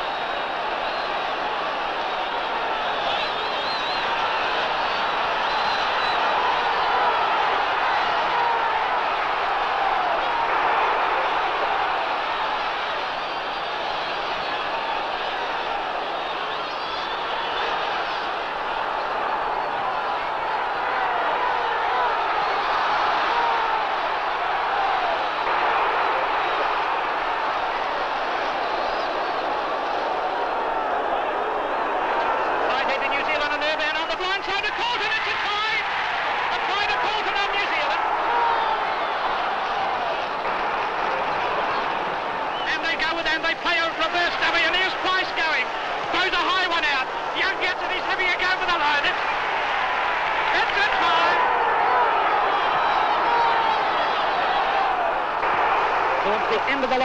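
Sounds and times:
stadium crowd cheering: 0:00.0 - 0:57.0.

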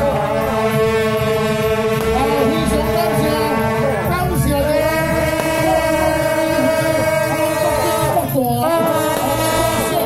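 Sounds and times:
reedy horn band playing: 0:00.0 - 0:10.0.

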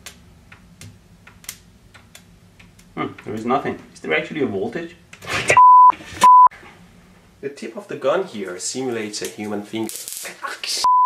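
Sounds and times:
censor bleeps: 0:05.6 - 0:06.5.

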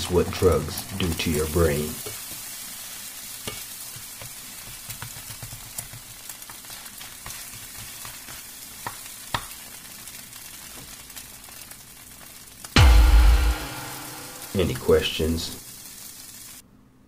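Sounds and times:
eggs sizzling in a frying pan: 0:00.0 - 0:12.8, 0:14.5 - 0:16.6
spatula tapping a pan: 0:03.5 - 0:09.6.

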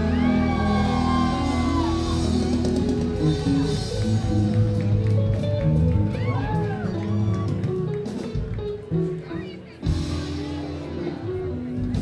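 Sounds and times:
bass guitar: 0:00.0 - 0:12.0
drums: 0:00.0 - 0:12.0
electric guitars: 0:00.0 - 0:12.0
keyboards: 0:00.0 - 0:12.0.

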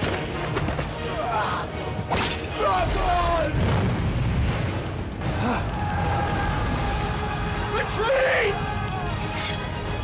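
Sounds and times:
explosion boom and rumble: 0:03.5 - 0:07.6.

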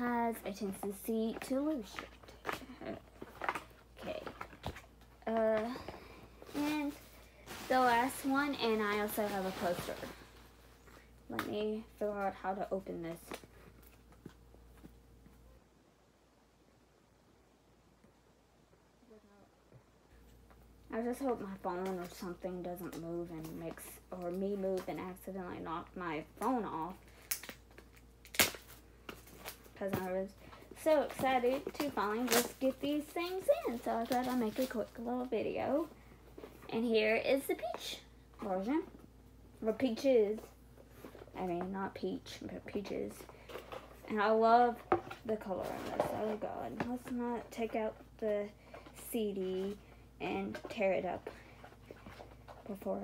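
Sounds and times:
paper and packaging rustling: 0:00.6 - 0:10.7, 0:26.8 - 0:37.9.

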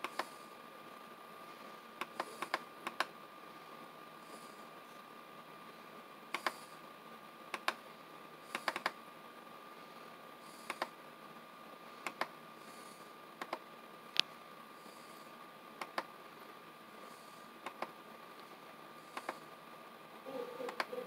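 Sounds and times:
computer mouse buttons clicking: 0:02.0 - 0:03.1, 0:06.3 - 0:06.6, 0:07.5 - 0:07.8, 0:08.5 - 0:09.0, 0:10.6 - 0:10.9, 0:12.0 - 0:12.3, 0:13.4 - 0:13.6, 0:15.8 - 0:16.1, 0:17.6 - 0:18.0, 0:19.1 - 0:19.4, 0:20.7 - 0:20.9.

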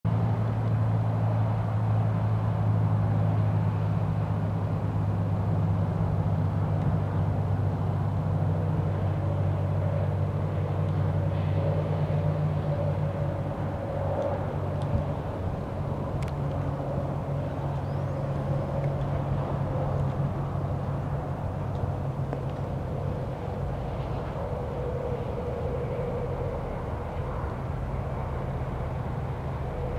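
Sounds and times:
highway traffic hum: 0:00.0 - 0:29.9.

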